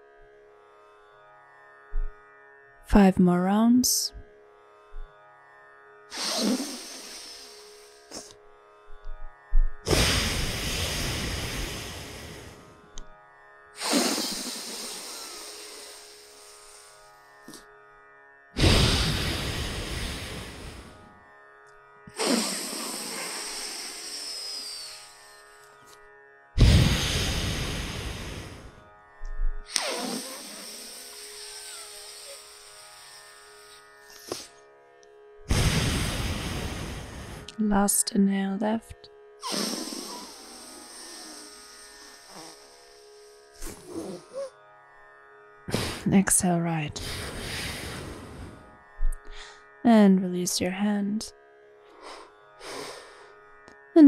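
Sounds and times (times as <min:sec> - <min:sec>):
sitar-style background music: 0:00.0 - 0:10.6, 0:12.4 - 0:13.8, 0:14.4 - 0:26.6, 0:28.7 - 0:35.5, 0:37.5 - 0:47.1, 0:48.5 - 0:54.0
slow nostril breathing: 0:06.1 - 0:09.0, 0:09.6 - 0:12.8, 0:13.8 - 0:17.6, 0:18.6 - 0:21.0, 0:22.1 - 0:25.9, 0:26.6 - 0:34.6, 0:39.4 - 0:44.6, 0:47.0 - 0:49.7, 0:51.9 - 0:53.4.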